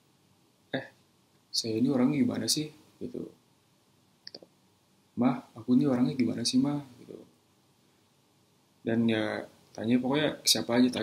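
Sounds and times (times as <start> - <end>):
man speaking: 0.8 - 3.4, 5.2 - 7.3, 8.8 - 11.0.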